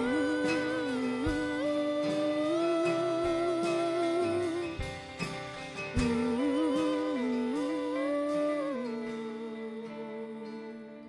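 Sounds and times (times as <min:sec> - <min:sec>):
person singing wordless melody: 0:00.0 - 0:11.0
quiet band accompaniment: 0:00.0 - 0:11.0.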